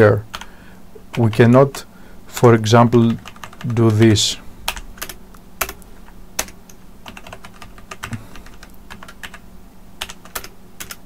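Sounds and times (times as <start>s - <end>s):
faint low hum: 0.0s - 11.0s
computer keyboard typing: 0.3s - 0.5s, 2.8s - 9.4s, 10.0s - 11.0s.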